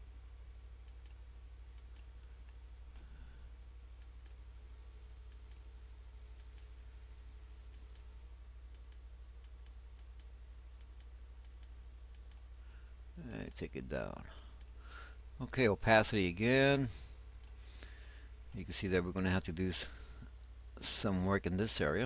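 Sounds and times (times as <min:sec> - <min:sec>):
low electrical hum: 0:00.0 - 0:22.0
computer mouse clicks: 0:01.8 - 0:03.0, 0:08.7 - 0:12.4.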